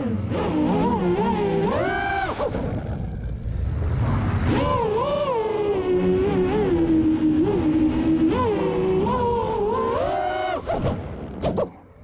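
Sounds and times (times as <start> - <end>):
drone motors and propellers whining: 0.0 - 12.0.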